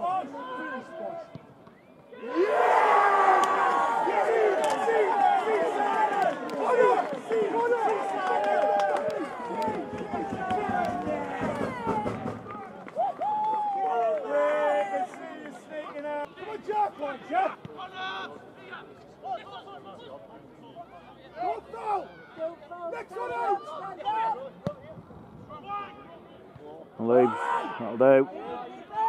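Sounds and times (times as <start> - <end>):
football crowd cheering and shouting: 0.0 - 29.0.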